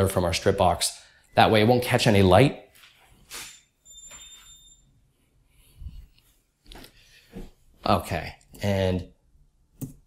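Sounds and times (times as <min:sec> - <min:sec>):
thin high whine: 0:03.3 - 0:05.1.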